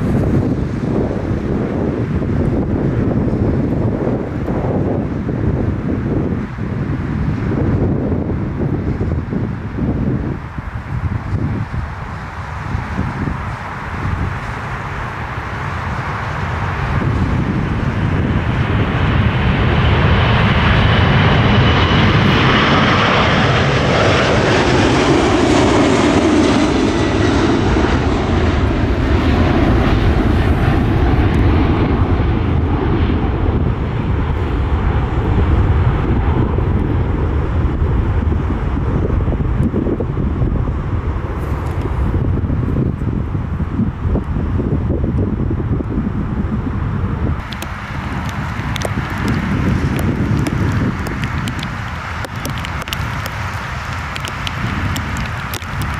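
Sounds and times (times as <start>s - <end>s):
dull rumble of climbing jet: 0.0s - 55.9s
jet engines roaring at takeoff: 0.0s - 55.9s.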